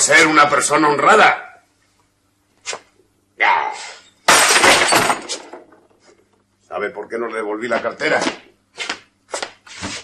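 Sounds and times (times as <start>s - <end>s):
glass bottle smashing: 4.3s - 5.6s.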